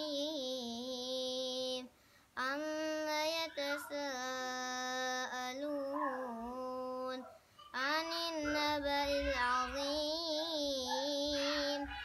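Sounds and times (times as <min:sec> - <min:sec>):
boy chanting a recitation: 0:00.0 - 0:12.0.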